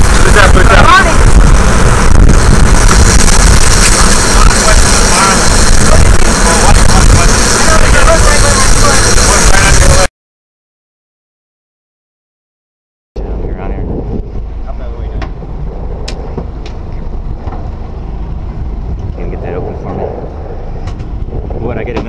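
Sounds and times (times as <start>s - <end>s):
boat engine rumble: 0.0s - 10.1s, 13.2s - 22.0s
wind on microphone: 0.0s - 10.1s, 13.2s - 22.0s
faint voices: 3.9s - 10.1s.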